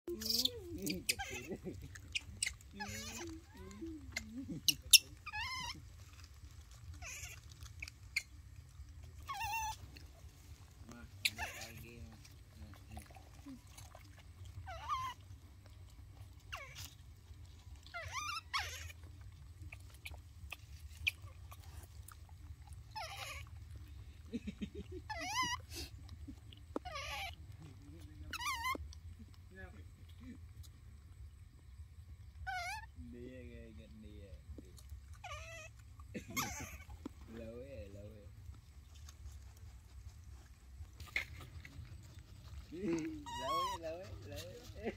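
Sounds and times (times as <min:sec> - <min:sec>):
baby monkeys squealing: 0:00.1 - 0:08.5, 0:09.2 - 0:15.5, 0:16.3 - 0:17.1, 0:17.7 - 0:21.9, 0:22.6 - 0:29.4, 0:32.3 - 0:33.1, 0:35.1 - 0:38.1, 0:40.3 - 0:44.9.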